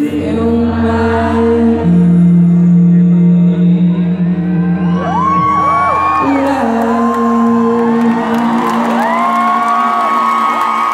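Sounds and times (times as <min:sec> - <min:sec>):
crowd cheering and whooping: 0:04.4 - 0:10.9.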